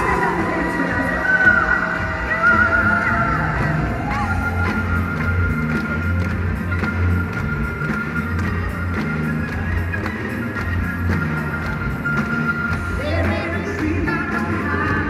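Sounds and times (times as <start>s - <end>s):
live band music: 0.0s - 15.0s.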